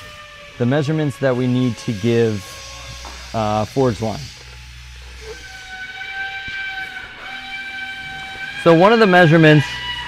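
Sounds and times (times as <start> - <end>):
low hum: 0.0 - 10.0
whistle-like tone: 5.2 - 10.0.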